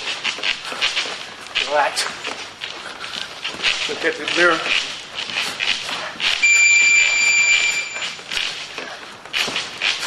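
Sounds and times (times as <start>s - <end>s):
feet shuffling on floor: 0.0s - 10.0s
electronic beep: 6.4s - 8.2s.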